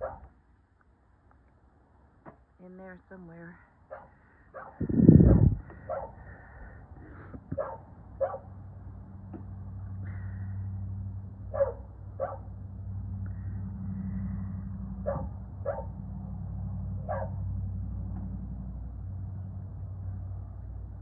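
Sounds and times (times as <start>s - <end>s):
dog barking: 0.0s - 0.3s, 3.9s - 6.2s, 7.5s - 8.5s, 11.5s - 12.5s, 15.0s - 16.0s, 17.0s - 17.4s.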